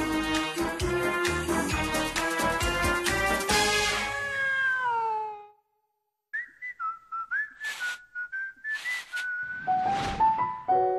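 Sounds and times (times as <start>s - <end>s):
whistled tune: 6.3s - 9.9s
short hissing bursts: 7.6s - 8.0s.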